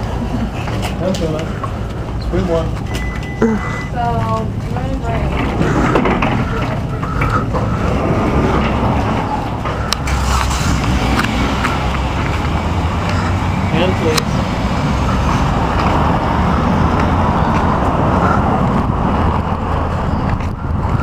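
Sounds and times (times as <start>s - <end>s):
low traffic rumble: 0.0s - 21.0s.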